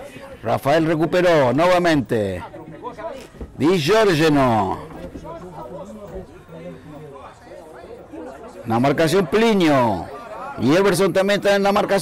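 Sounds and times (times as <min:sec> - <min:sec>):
men chatting quietly: 0:00.0 - 0:12.0.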